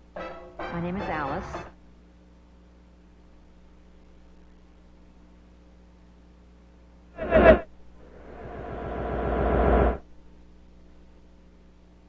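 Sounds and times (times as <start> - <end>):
swelling fluttering sound effect: 7.2 - 10.0.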